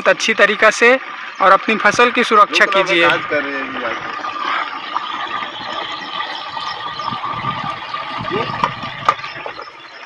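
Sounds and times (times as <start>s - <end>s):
liquid pouring and splashing: 0.0s - 10.0s.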